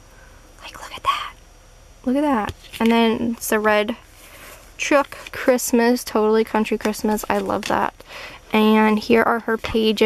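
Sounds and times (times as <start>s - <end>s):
soft whisper: 0.6s - 1.4s.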